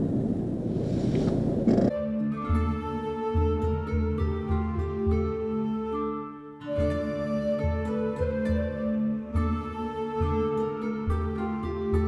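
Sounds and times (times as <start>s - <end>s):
car engine and tyres rumbling: 0.0s - 2.0s.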